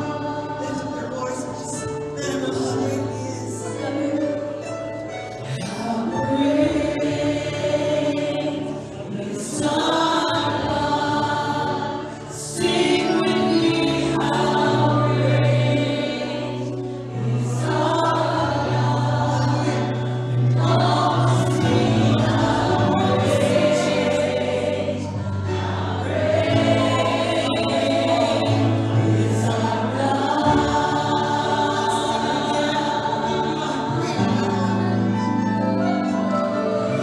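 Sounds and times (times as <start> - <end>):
singers singing together: 0.0 - 4.6, 5.4 - 35.5.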